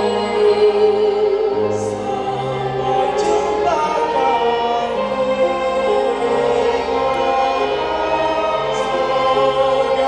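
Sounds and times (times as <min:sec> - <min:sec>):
people singing together: 0:00.0 - 0:10.0
string orchestra: 0:00.0 - 0:10.0.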